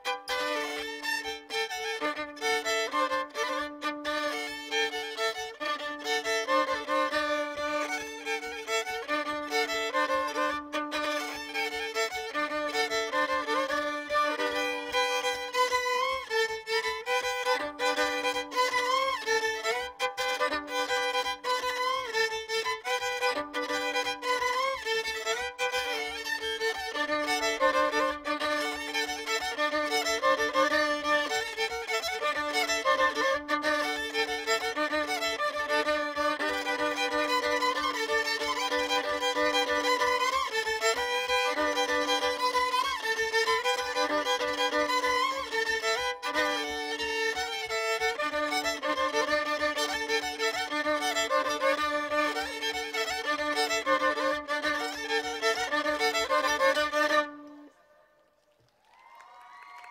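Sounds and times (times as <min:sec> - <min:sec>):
solo violin folk melody: 0:00.0 - 0:59.9.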